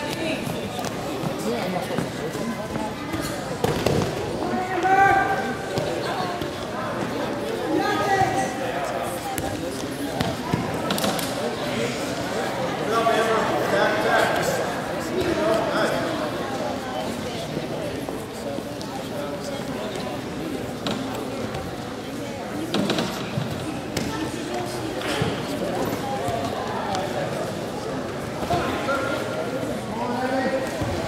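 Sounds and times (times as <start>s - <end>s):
murmur of people talking: 0.0s - 31.0s.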